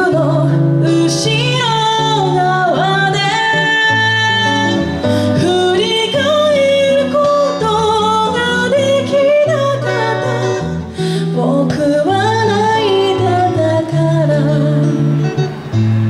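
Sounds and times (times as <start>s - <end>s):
woman singing into microphone: 0.0s - 15.6s
guitar accompaniment: 0.0s - 16.0s.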